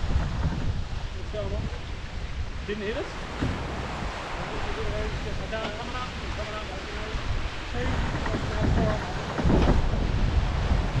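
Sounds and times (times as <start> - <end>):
water rushing past hull: 0.0 - 11.0
wind buffeting microphone: 0.0 - 11.0.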